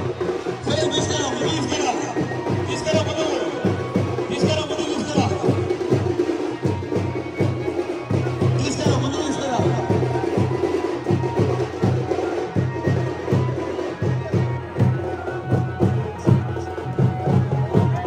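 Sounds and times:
crowd voices: 0.0s - 18.0s
fast drum beat: 0.0s - 18.0s.

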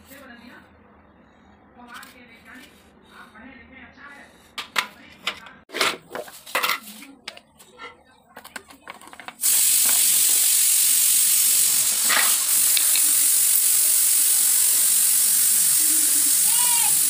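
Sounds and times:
loud steady hiss: 9.4s - 17.0s.

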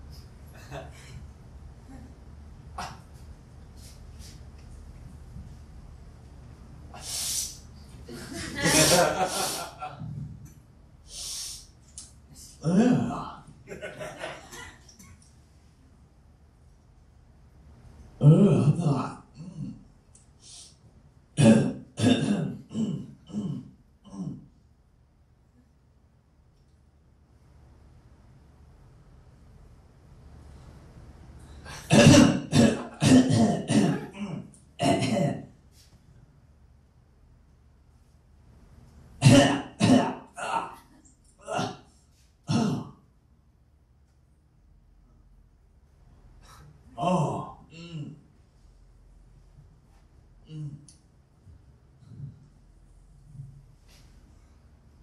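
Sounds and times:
person clearing throat: 2.8s - 3.1s, 12.5s - 13.5s, 18.2s - 19.8s, 21.4s - 24.5s, 31.7s - 35.4s, 39.2s - 41.9s, 42.5s - 43.0s, 46.5s - 48.2s, 50.4s - 50.9s
sharp breath: 7.0s - 7.6s, 11.1s - 11.7s
person coughing: 12.6s - 13.3s, 21.4s - 24.4s, 31.7s - 35.4s, 39.2s - 41.9s, 42.5s - 42.9s, 46.5s - 48.2s.

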